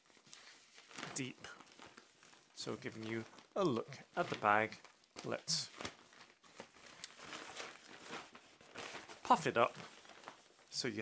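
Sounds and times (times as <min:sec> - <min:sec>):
plastic bag rustling and crinkling: 0:00.0 - 0:11.0.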